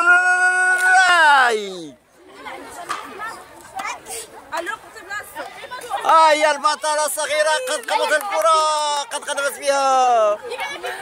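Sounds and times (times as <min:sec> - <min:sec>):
children chattering: 0:01.5 - 0:11.0.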